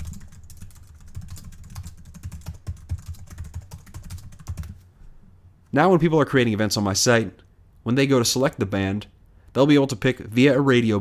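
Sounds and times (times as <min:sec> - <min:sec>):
fast typing on keyboard: 0:00.0 - 0:04.8.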